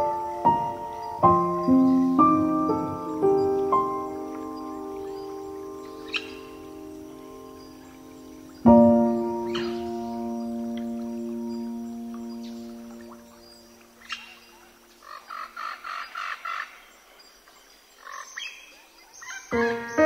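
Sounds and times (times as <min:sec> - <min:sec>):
relaxing piano music: 0:00.0 - 0:15.6, 0:19.2 - 0:20.0
bird chirping: 0:00.0 - 0:20.0.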